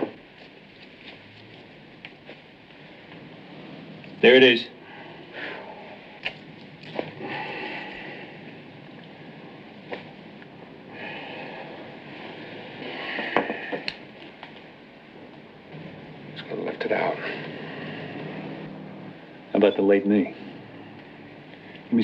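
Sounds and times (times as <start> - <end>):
gowns rustling: 0.0 - 4.6
steady hiss: 0.0 - 22.0.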